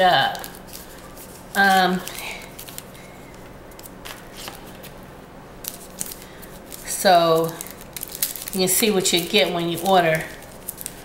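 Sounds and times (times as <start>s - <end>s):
paper and plastic wrapping rustling: 0.0s - 5.0s, 5.6s - 11.0s.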